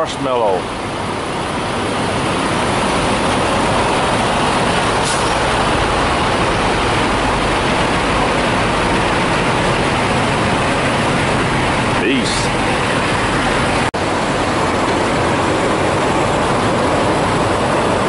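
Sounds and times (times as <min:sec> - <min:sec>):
truck engines running: 0:00.0 - 0:18.0.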